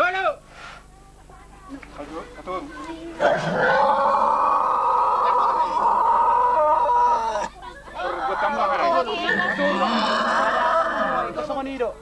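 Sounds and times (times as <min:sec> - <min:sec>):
pig squealing: 0:03.2 - 0:07.5, 0:09.1 - 0:11.3.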